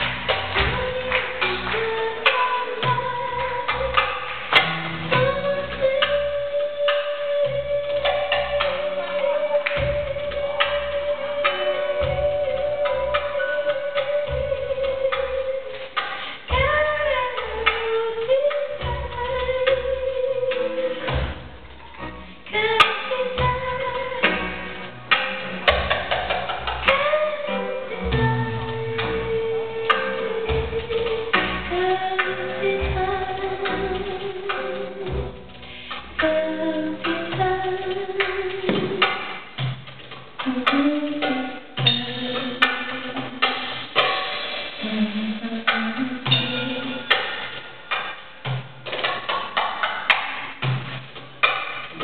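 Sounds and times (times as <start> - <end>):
hand drum and drum kit: 0.0 - 52.0
sharp drum slap: 38.2 - 40.9.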